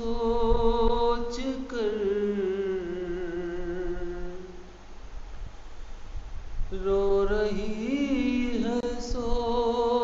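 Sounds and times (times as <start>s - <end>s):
man singing a long note: 0.0s - 4.8s, 6.7s - 10.0s.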